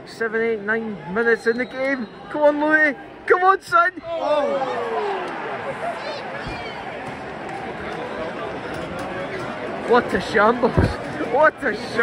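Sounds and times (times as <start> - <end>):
stadium crowd murmuring: 0.0 - 12.0.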